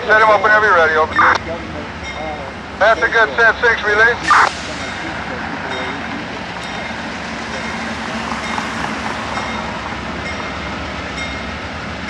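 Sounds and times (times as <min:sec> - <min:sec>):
radio call voice: 0:00.0 - 0:01.8, 0:02.4 - 0:06.6
idling locomotives rumble: 0:00.0 - 0:12.0
radio squelch hiss: 0:02.9 - 0:05.1.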